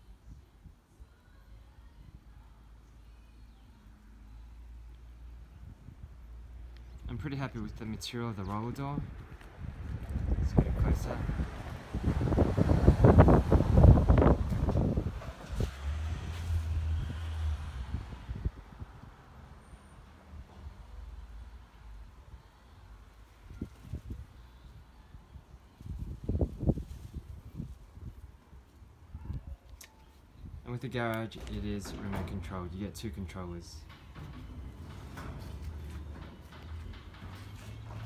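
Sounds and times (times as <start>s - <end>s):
wind buffeting microphone: 7.0s - 19.4s, 25.4s - 28.4s.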